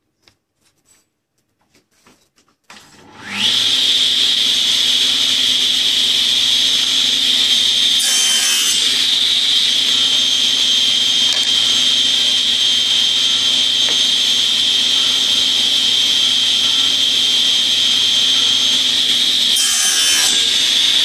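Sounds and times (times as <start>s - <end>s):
table saw motor whine: 2.7s - 21.0s
saw blade cutting wood: 3.0s - 21.0s.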